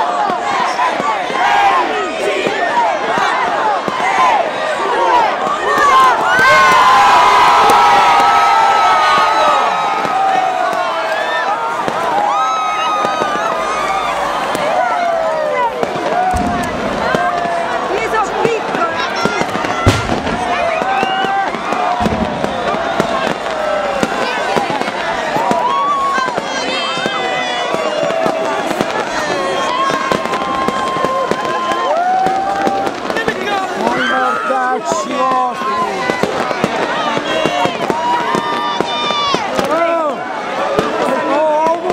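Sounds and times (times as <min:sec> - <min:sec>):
crowd shouting and cheering: 0:00.0 - 0:41.9
firecrackers banging: 0:02.4 - 0:41.9
firecracker pops: 0:15.7 - 0:33.9
loud bang: 0:16.1 - 0:17.8, 0:19.5 - 0:24.8.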